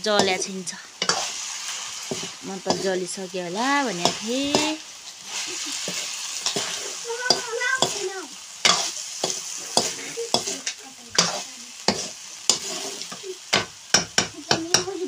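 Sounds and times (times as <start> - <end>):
food sizzling in oil: 0.0 - 15.0
spatula scraping wok: 0.0 - 15.0.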